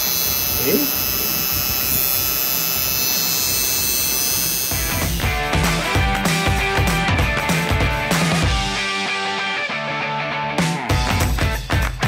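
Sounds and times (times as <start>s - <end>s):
tattoo machine buzzing: 0.0s - 9.0s
music: 4.7s - 12.0s.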